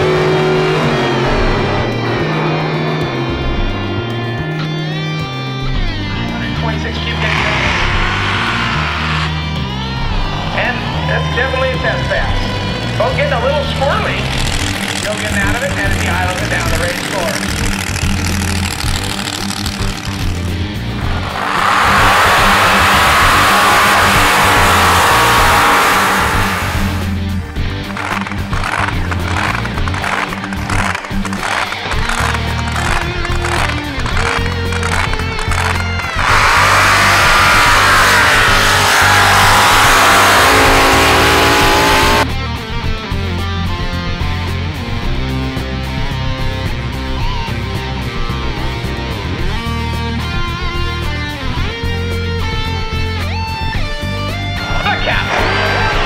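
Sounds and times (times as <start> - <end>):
stepping bass line: 0.0 - 42.3
rock music: 0.0 - 56.0.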